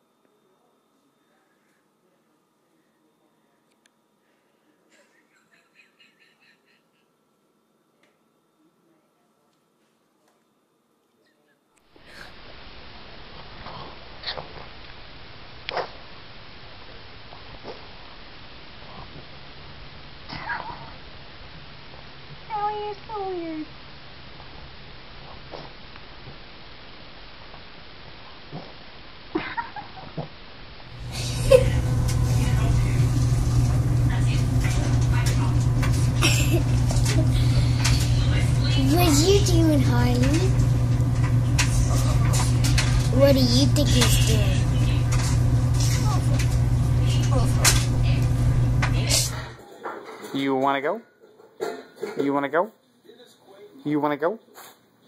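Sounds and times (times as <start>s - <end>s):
low hum: 12.0s - 49.6s.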